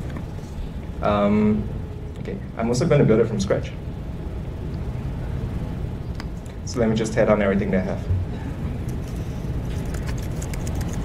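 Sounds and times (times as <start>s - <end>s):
low room noise rumble: 0.0s - 11.0s.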